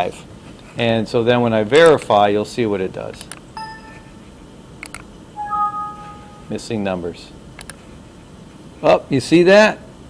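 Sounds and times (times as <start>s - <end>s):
two-note alert chime: 3.6s - 4.1s, 5.4s - 6.7s.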